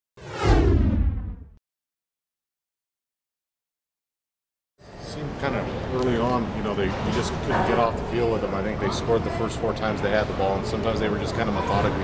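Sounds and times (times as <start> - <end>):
whoosh with deep boom: 0.2 - 1.6.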